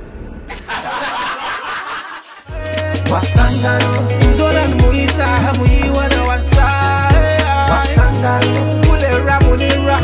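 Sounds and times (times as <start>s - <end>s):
people laughing: 0.5s - 2.6s
low background music: 2.5s - 10.0s.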